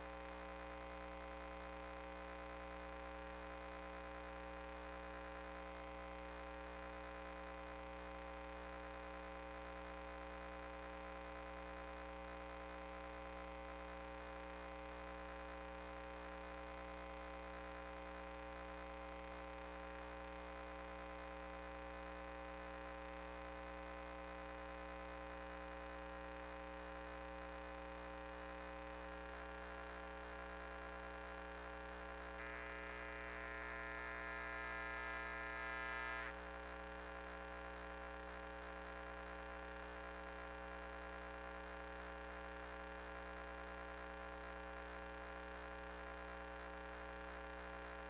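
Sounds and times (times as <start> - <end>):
electrical mains hum: 0.0 - 48.0
high whine: 32.4 - 36.4.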